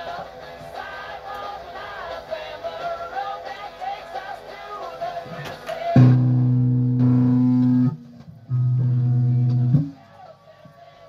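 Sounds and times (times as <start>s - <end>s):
electric guitar low notes: 6.0s - 10.0s.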